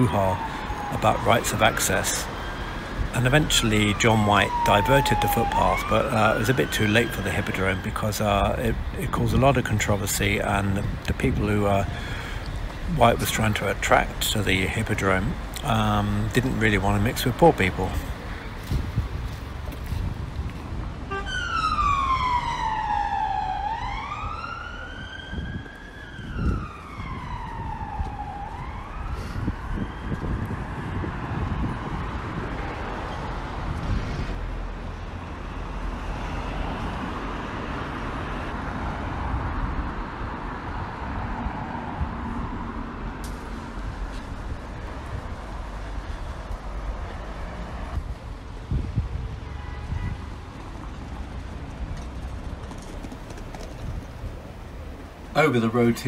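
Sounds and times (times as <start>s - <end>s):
police siren wailing: 0.0s - 8.8s, 21.0s - 33.2s
road traffic: 0.0s - 56.0s.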